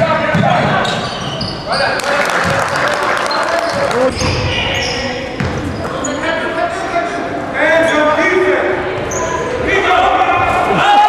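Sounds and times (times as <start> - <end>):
basketball bouncing: 0.2 - 1.0, 2.4 - 2.7, 5.4 - 5.7
sneakers squeaking on hardwood: 0.2 - 6.3, 8.9 - 9.6.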